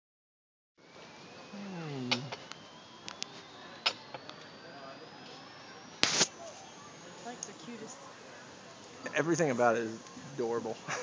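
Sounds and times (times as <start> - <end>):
steady background hiss: 0.8 - 11.0.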